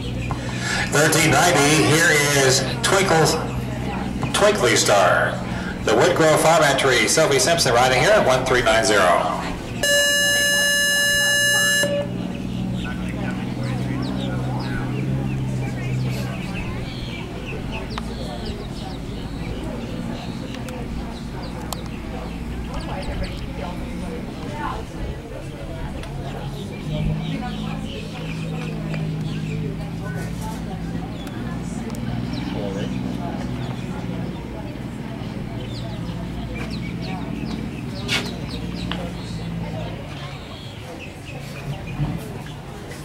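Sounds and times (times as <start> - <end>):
distant voices: 0.0 - 43.0
electronic start buzzer: 9.8 - 12.2.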